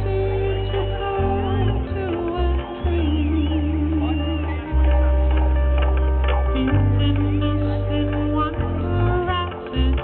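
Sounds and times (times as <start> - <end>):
live band music over a pa: 0.0 - 10.0.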